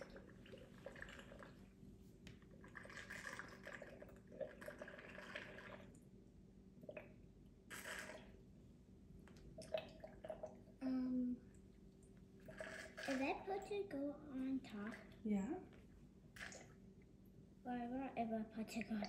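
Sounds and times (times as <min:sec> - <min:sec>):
water trickling into vase: 0:00.0 - 0:01.7, 0:02.5 - 0:06.1, 0:09.6 - 0:10.8, 0:11.5 - 0:13.7.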